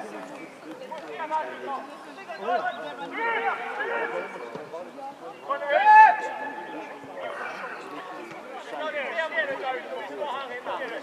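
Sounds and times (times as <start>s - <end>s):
loud drawn-out shout: 5.5s - 6.6s
people shouting: 5.5s - 6.6s.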